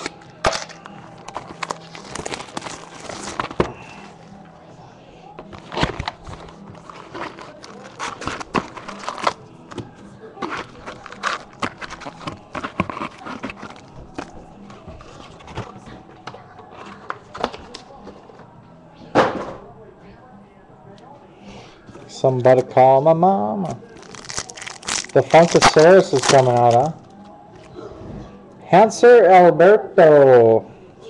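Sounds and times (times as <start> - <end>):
plastic wrap and cardboard crinkling: 0.0 - 4.1, 5.4 - 9.4, 10.4 - 14.3, 23.8 - 27.2.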